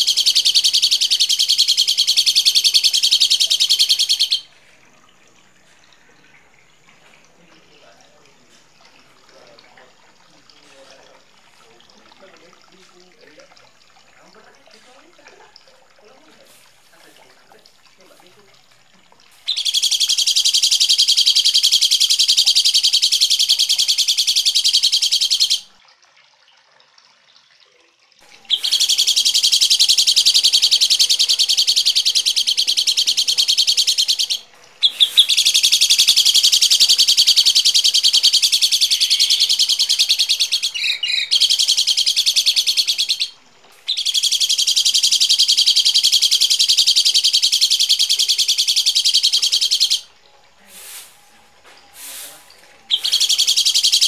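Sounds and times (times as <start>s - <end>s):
songbird chattering: 0.0s - 4.6s, 19.4s - 25.8s, 28.4s - 50.1s, 52.0s - 54.0s.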